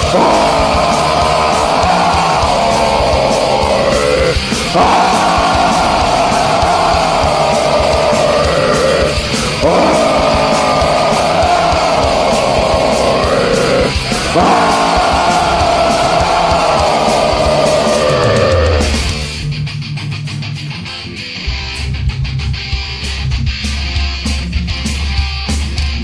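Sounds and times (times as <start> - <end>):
heavy metal band playing: 0.0 - 26.0.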